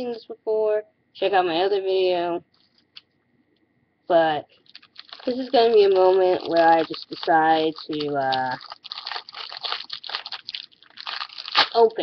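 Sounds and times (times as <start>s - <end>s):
plastic wrapper crinkling: 4.4s - 12.0s.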